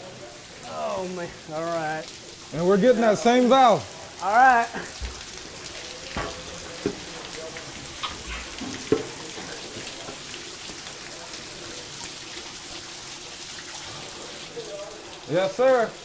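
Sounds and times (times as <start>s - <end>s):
water spraying from pipes: 0.0s - 16.0s
water splashing on floor: 0.6s - 16.0s
sharp knocks: 6.1s - 7.1s.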